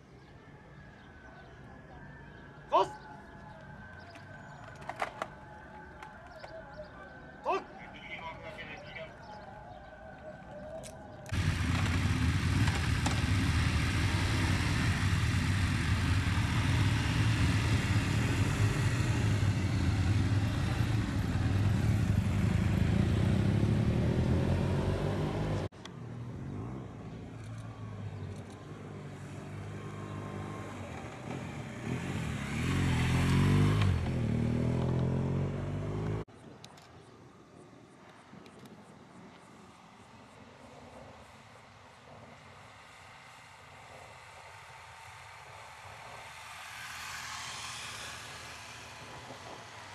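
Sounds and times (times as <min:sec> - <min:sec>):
motorcycle engines running: 0:11.0 - 0:36.3, 0:39.7 - 0:49.9
motorcycle engine revving: 0:11.3 - 0:25.7, 0:27.7 - 0:36.3, 0:42.2 - 0:49.9.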